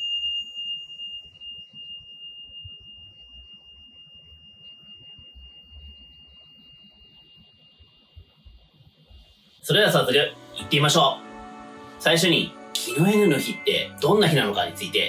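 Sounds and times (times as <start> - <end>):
tingsha cymbals ringing: 9.7 - 15.0.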